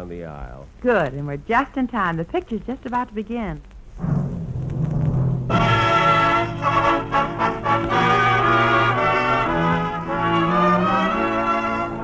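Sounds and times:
orchestral music: 4.8 - 12.0.

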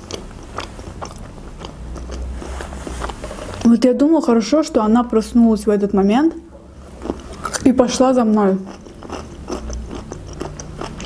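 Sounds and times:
person chewing food: 0.0 - 3.7, 6.7 - 7.7, 8.6 - 11.0.

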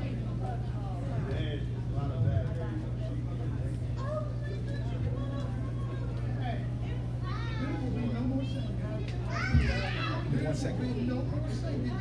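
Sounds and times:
congregation chatter: 0.0 - 12.0
steady low hum: 0.0 - 12.0.

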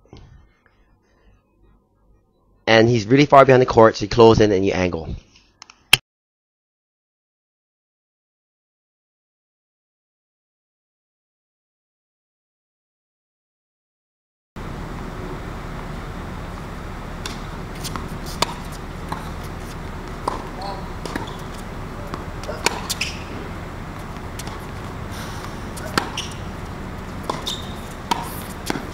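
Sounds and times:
rackets striking tennis ball: 14.6 - 28.9
steady low hum: 14.6 - 28.9
tennis ball bouncing: 14.6 - 28.9.

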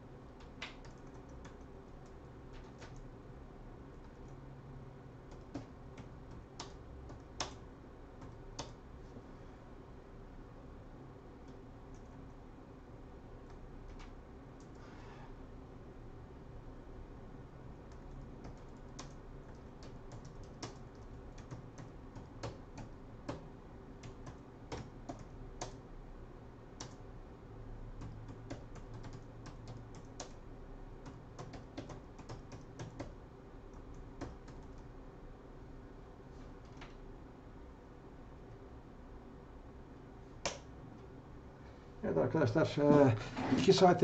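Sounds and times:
faint room noise: 0.0 - 44.0
typing on computer keyboard: 0.4 - 3.1, 5.3 - 7.6, 8.2 - 8.8, 17.9 - 25.8, 28.0 - 30.4, 31.0 - 33.2, 33.8 - 34.9.

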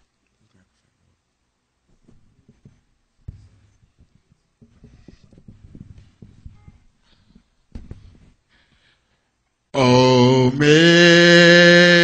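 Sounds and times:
microphone handling knocks and rustles: 1.8 - 8.5.

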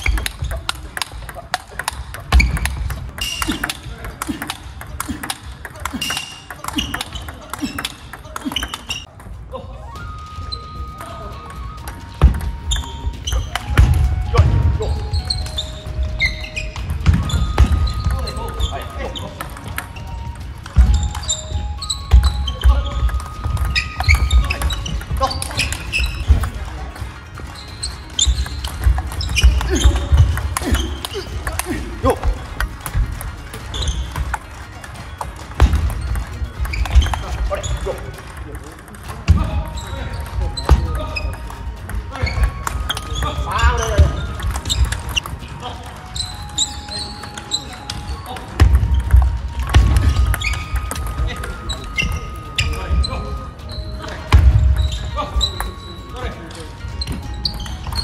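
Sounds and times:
table tennis ball hits: 0.0 - 9.3, 11.9 - 15.6, 16.2 - 27.5, 28.2 - 52.7.

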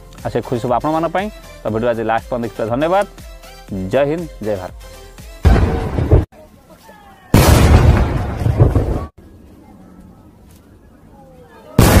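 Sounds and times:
fireworks explosions: 5.5 - 6.3, 7.3 - 9.1, 11.8 - 12.0.

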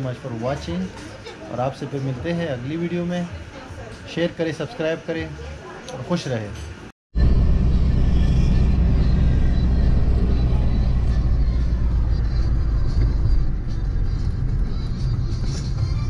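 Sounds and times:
car driving drone: 7.2 - 16.0
background music: 9.1 - 16.0.

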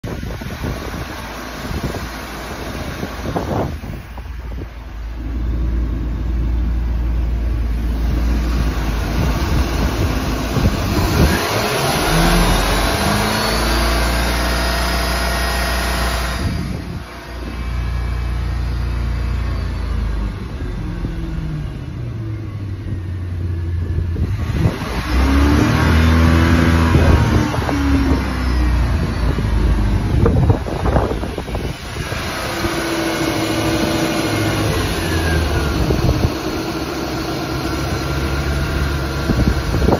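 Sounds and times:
boat engine revving and idling: 0.0 - 39.9.

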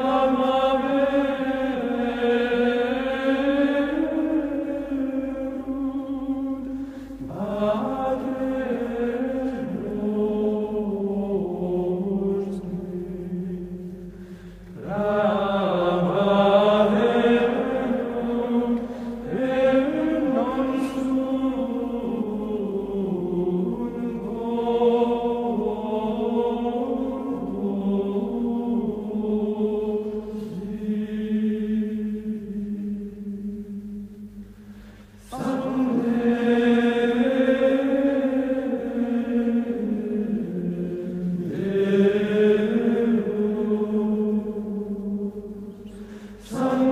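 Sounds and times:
slow sung chant: 0.0 - 46.9.

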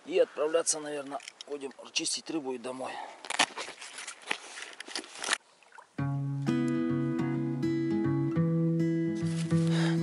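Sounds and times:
close rustling and scraping: 3.2 - 5.4.

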